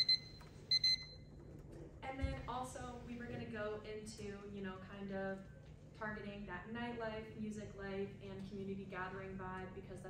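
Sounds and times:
electronic alarm beeping: 0:00.0 - 0:01.3.

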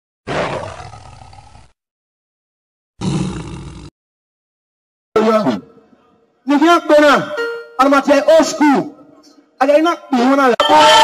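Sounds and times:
big cat roars: 0:00.3 - 0:01.8, 0:03.0 - 0:03.9.

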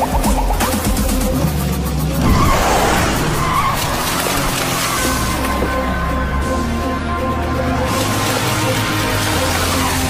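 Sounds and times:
background music: 0:00.0 - 0:10.0
loud rushing noise: 0:02.2 - 0:05.4.

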